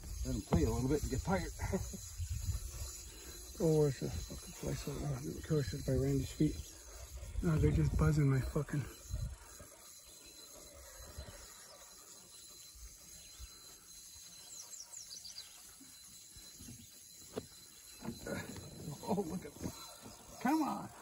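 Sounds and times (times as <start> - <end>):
faint high insect tone: 0.0 - 21.0.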